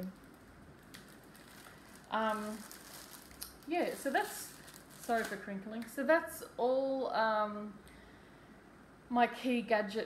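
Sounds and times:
packaging being handled: 0.0 - 5.9.

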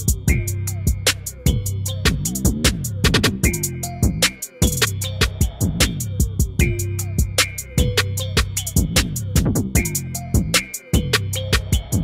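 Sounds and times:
background music with bass beat: 0.0 - 12.0.

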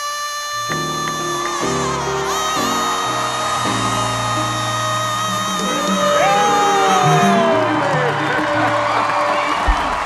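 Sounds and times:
countertenor singing high note: 0.0 - 9.8
sustained band chords: 0.7 - 9.4.

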